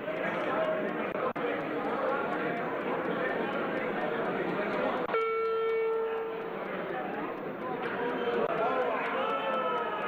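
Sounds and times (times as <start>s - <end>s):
chatter of voices in a chamber: 0.0s - 10.0s.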